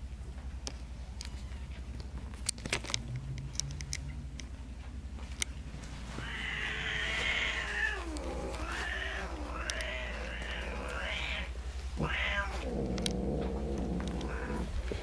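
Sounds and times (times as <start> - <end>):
kittens and cat crying: 6.1 - 15.0.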